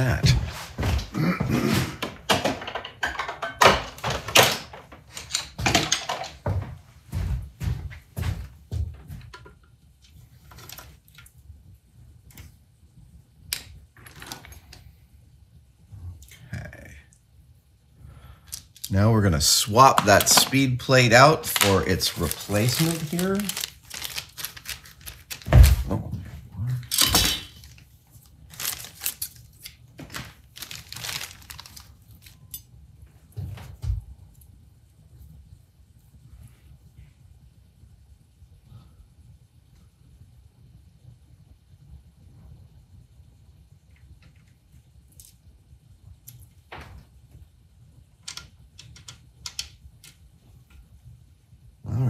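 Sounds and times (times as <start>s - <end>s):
plastic bag crinkling and tearing: 19.8s - 25.9s, 26.9s - 27.8s, 28.5s - 32.4s
screwdriver and parts clicking: 48.2s - 50.2s.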